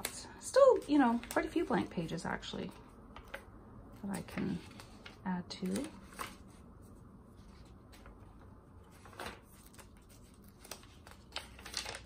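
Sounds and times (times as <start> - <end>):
stiff paper pages rustling: 0.8 - 1.9, 4.1 - 12.0.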